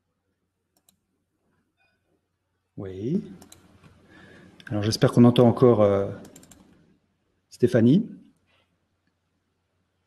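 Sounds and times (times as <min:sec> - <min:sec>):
faint clicks: 0:00.8 - 0:01.0, 0:03.4 - 0:04.0, 0:06.2 - 0:06.9.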